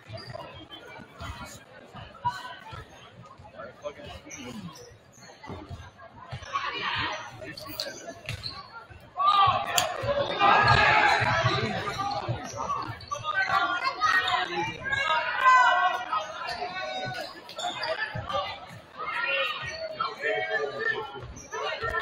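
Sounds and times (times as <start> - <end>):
spectators chattering: 0.0 - 22.0.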